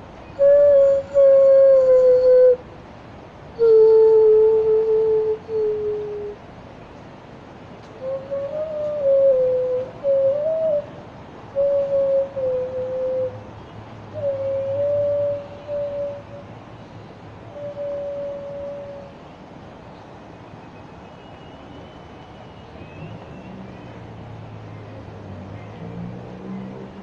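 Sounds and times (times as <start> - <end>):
low steady background hum: 0.0 - 27.0.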